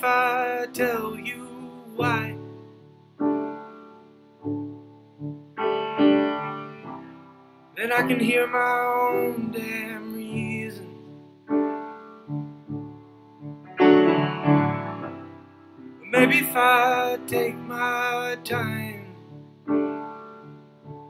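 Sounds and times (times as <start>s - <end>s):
slow piano chords: 0.0s - 21.0s.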